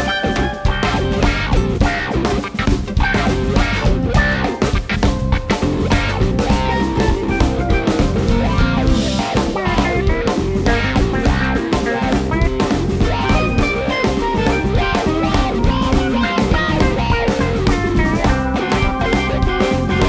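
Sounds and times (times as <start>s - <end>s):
rock band instrumental jam: 0.0s - 20.0s.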